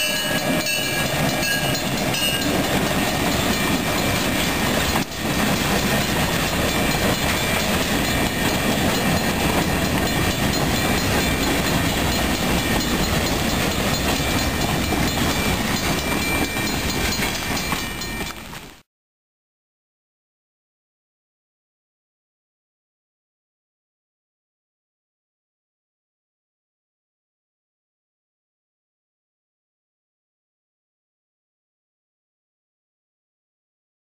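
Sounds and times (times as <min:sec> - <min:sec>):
diesel locomotive passing: 0:00.0 - 0:18.8
freight cars rumbling and clattering: 0:00.0 - 0:18.8.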